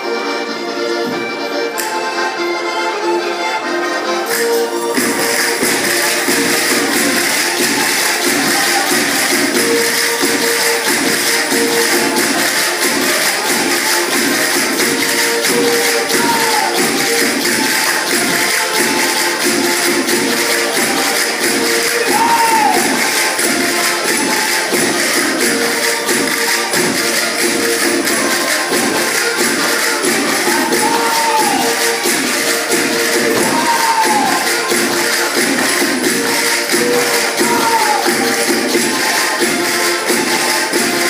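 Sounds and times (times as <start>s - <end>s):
accordion playing folk tune: 0.0s - 41.0s
fast percussion taps: 5.0s - 41.0s.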